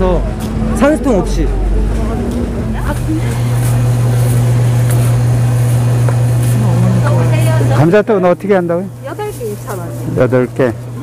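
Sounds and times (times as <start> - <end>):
faint market voices: 0.0 - 11.0
low mechanical hum: 0.0 - 11.0.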